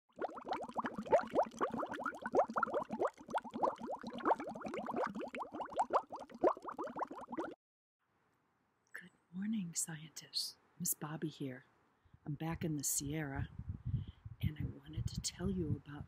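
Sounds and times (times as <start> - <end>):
air bubbles rising through water: 0.1 - 7.6.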